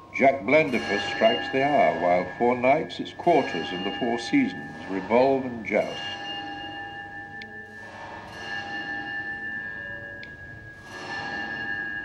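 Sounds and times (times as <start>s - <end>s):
clock bells striking: 0.0s - 12.0s.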